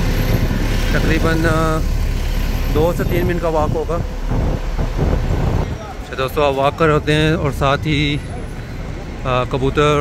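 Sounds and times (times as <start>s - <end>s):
bus and traffic engines rumbling: 0.0s - 10.0s.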